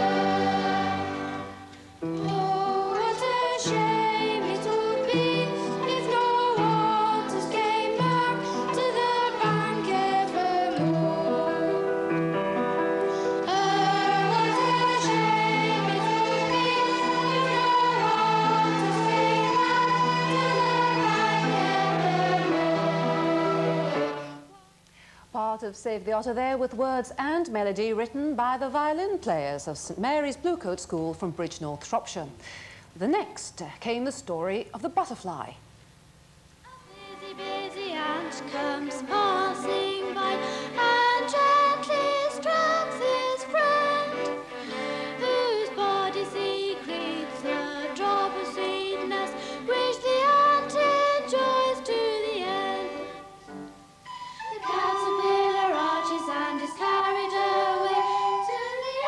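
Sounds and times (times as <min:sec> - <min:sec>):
girl singing into microphone: 0:00.0 - 0:12.2, 0:13.1 - 0:23.3, 0:36.7 - 0:59.0
violin ensemble: 0:00.0 - 0:12.3, 0:13.1 - 0:24.5, 0:36.9 - 0:59.0
children's choir singing: 0:00.0 - 0:24.7, 0:36.7 - 0:59.0.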